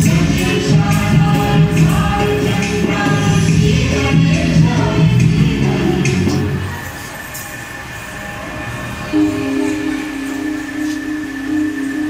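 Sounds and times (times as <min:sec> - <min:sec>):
dance music: 0:00.0 - 0:12.0
faint high hum: 0:00.0 - 0:12.0
rumbling hall noise: 0:00.0 - 0:12.0.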